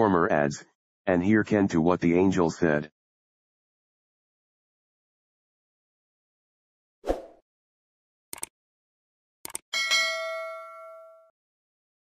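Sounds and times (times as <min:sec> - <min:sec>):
notification bell ding: 0:09.8 - 0:11.3.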